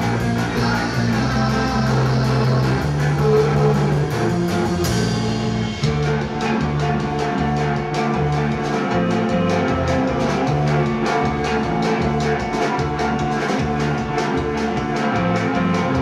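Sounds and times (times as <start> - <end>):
rock band playing live: 0.0 - 16.0.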